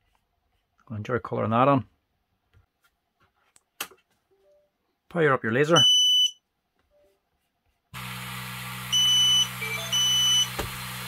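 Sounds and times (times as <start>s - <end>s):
high-pitched buzzer beeps: 8.9s - 10.6s.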